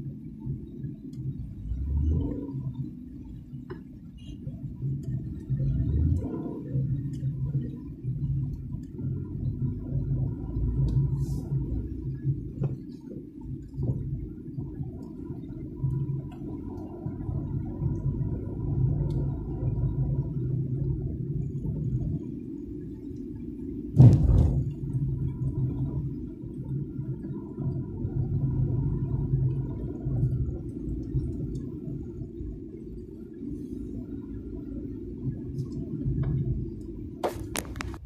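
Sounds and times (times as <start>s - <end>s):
car engine and road drone: 0.0s - 38.0s
sharp thump: 24.0s - 24.7s.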